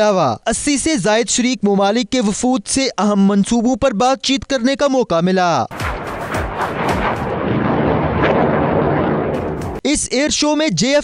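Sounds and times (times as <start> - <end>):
jet roar with crackles: 5.7 - 9.8.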